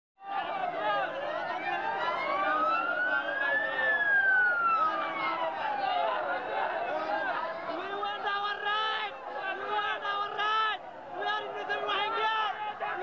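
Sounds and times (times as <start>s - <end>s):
crowd shouting: 0.2s - 13.0s
siren wailing: 0.4s - 7.3s.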